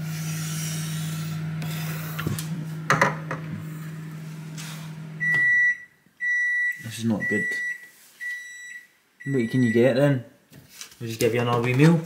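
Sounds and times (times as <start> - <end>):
microwave oven humming: 0.0 - 6.0
microwave long beeps: 5.0 - 10.0.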